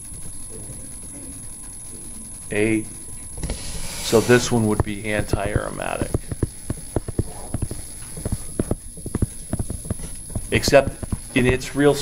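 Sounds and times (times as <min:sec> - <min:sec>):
stylus tapping on touchscreen: 0:04.7 - 0:11.7.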